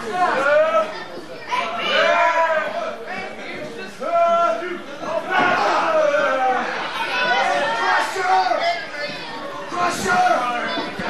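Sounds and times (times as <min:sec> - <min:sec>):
spectators calling out and chattering: 0:00.0 - 0:11.0.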